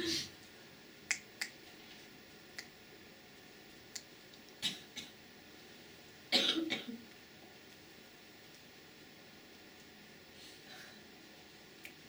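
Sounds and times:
person coughing: 6.3s - 7.0s.

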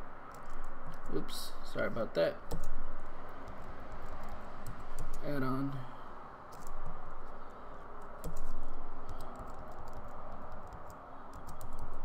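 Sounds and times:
keyboard keys clicking: 2.5s - 2.8s, 8.0s - 12.0s.

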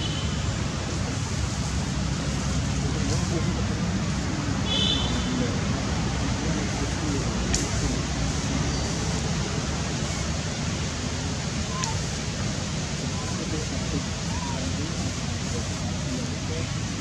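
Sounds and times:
faint distant voices: 0.0s - 17.0s
steady rushing noise: 0.0s - 17.0s.

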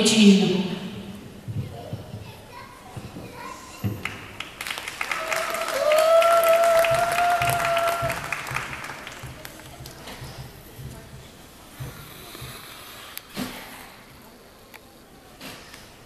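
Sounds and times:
spectators clapping: 4.0s - 10.0s.

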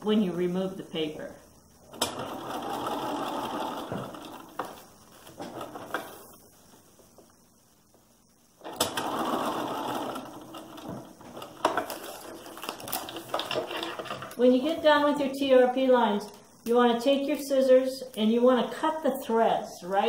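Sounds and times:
sewing machine stitching: 1.9s - 4.8s, 8.6s - 14.3s.

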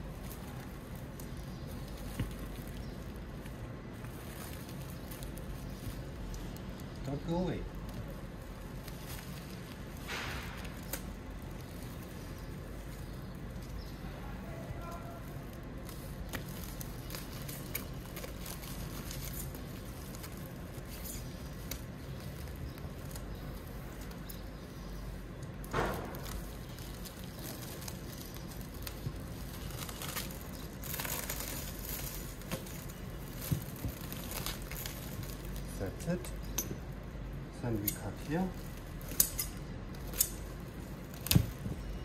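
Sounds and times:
stretch film pulled off roll: 0.0s - 13.8s, 14.7s - 24.4s, 25.4s - 35.8s.

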